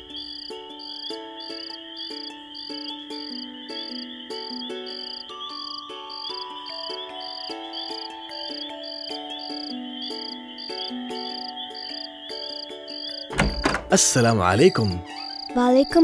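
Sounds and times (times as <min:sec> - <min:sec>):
crickets chirping: 0:00.0 - 0:16.0
gentle melody of held notes: 0:00.0 - 0:16.0
high insect trill: 0:00.0 - 0:16.0.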